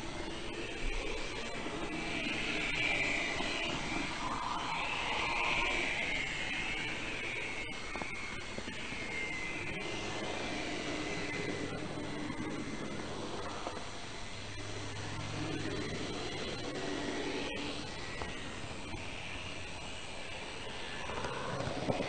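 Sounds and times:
model train motor whine: 0.0s - 22.0s.

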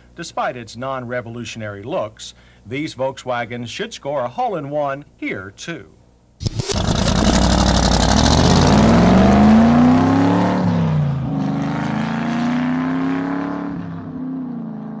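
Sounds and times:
car engine accelerating hard: 6.5s - 15.0s.

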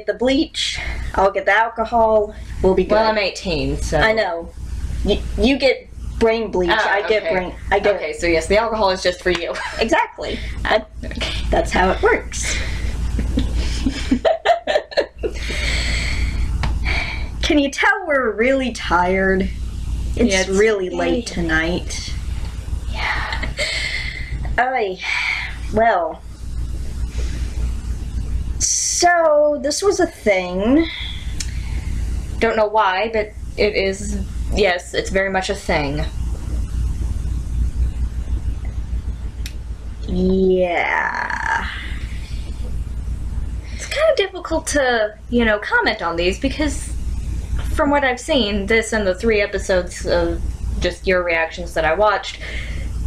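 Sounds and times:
low fluctuating rumble: 0.0s - 53.0s
young woman laughing: 6.7s - 7.6s, 11.9s - 16.2s.

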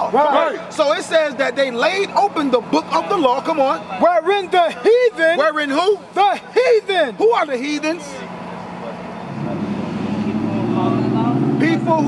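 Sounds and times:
vehicle engine droning: 7.1s - 12.0s.

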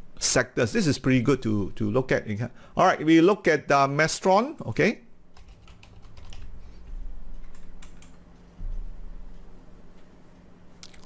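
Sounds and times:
typing on computer keyboard: 5.4s - 6.5s, 7.4s - 8.2s
low hum: 6.0s - 11.0s.

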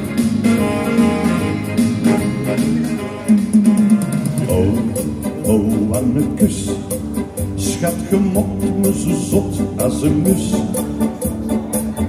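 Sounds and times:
guitar-led dance music: 0.0s - 12.0s.

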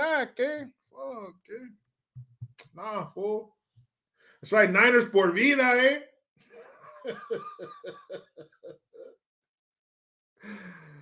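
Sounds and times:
man laughing: 6.5s - 9.2s.

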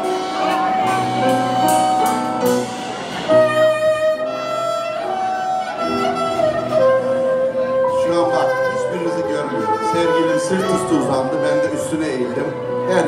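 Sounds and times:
band accompaniment: 0.0s - 13.0s
clarinet melody: 0.0s - 13.0s.

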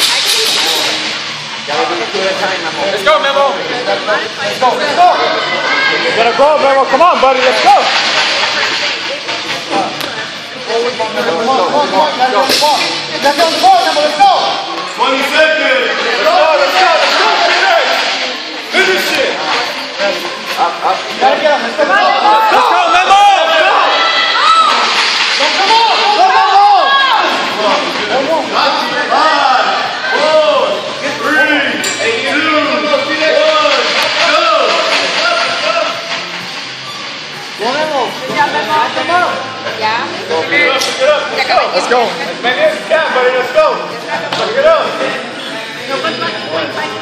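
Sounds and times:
faint voices: 0.0s - 47.0s
loud hiss of room noise: 0.0s - 47.0s
voices shouting encouragement: 21.5s - 27.6s.

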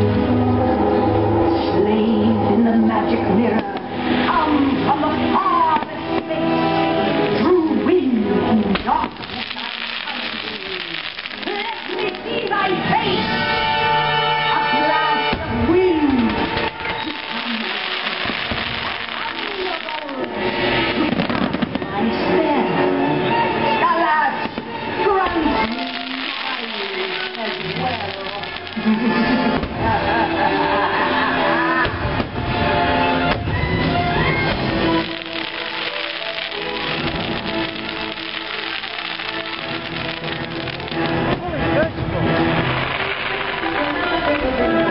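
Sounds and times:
show music with long held notes: 0.0s - 44.9s
fireworks popping and crackling: 3.5s - 13.3s, 14.8s - 22.3s, 24.4s - 30.4s, 31.8s - 44.9s.

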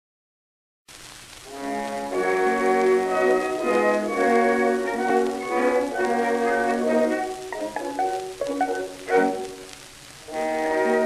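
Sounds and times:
record surface hiss: 0.9s - 11.0s
small orchestra playing: 1.5s - 9.6s, 10.3s - 11.0s.

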